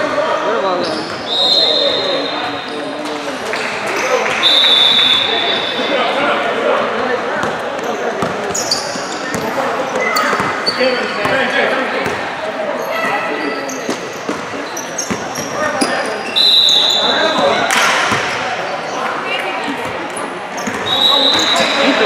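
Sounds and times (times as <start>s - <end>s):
players calling out: 0.0s - 22.0s
sneakers squeaking on court: 0.8s - 3.8s, 7.4s - 12.2s, 12.8s - 22.0s
shrill whistle blast: 1.3s - 2.1s, 4.4s - 5.8s, 16.3s - 17.4s, 20.9s - 21.8s.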